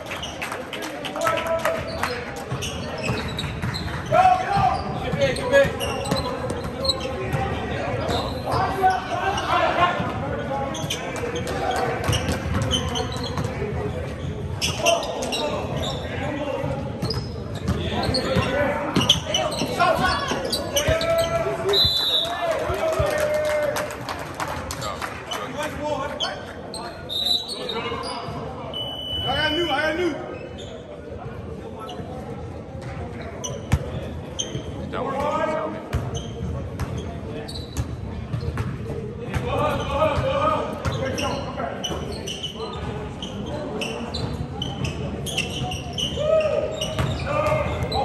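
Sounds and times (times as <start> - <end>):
basketball bouncing on court: 35.9 - 37.1, 37.7 - 41.1, 46.8 - 48.0.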